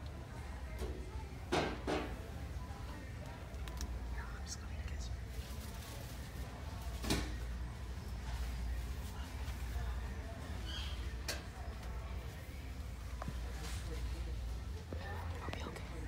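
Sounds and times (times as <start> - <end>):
faint background music: 0.0 - 16.0
hushed whispering: 3.8 - 5.5, 15.0 - 16.0.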